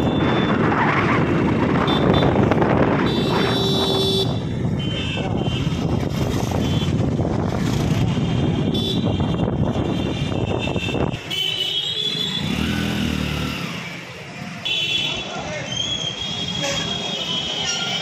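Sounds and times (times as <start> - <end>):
motorcycle engine: 0.0 - 10.8, 11.8 - 14.8
wind noise: 0.0 - 11.3
street sound: 0.0 - 18.0.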